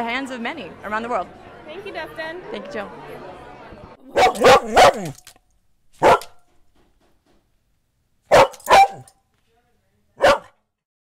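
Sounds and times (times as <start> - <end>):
dog barking: 4.1 - 5.2, 6.0 - 6.4, 8.3 - 9.1, 10.2 - 10.6.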